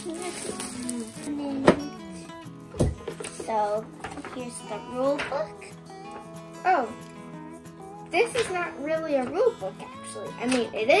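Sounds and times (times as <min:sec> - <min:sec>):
plastic shrink-wrap crinkling: 0:00.0 - 0:01.6
background music: 0:00.0 - 0:11.0.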